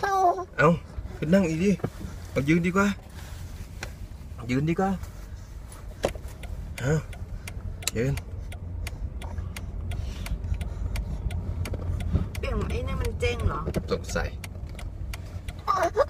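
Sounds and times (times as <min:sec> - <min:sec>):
car cabin engine rumble: 0:00.0 - 0:16.0
sharp clicks and knocks: 0:06.0 - 0:15.6.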